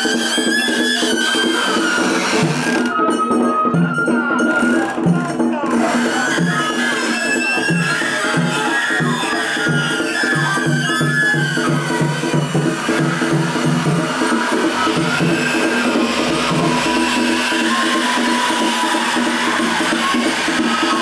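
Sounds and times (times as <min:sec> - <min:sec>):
festival music with drums: 0:00.0 - 0:21.0.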